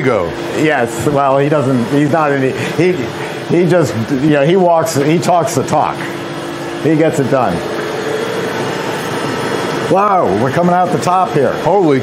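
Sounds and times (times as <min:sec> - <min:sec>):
freezer motor humming: 0:00.0 - 0:12.0.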